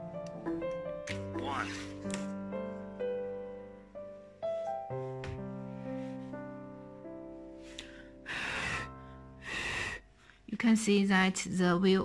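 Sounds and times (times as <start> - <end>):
soft piano background music: 0.0 - 12.0.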